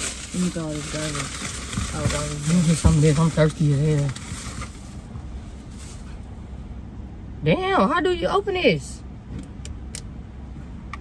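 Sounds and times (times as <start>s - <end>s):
plastic bag rustling: 0.0s - 6.2s
low steady rumble: 0.0s - 11.0s.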